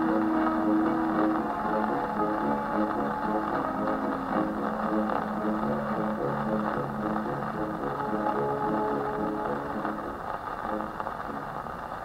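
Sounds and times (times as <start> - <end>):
orchestra playing on gramophone: 0.0 - 11.7
record surface hiss: 0.0 - 12.0.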